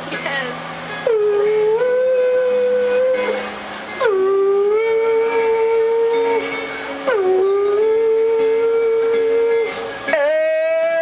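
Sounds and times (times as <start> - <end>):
man singing wordless high notes: 1.0 - 11.0.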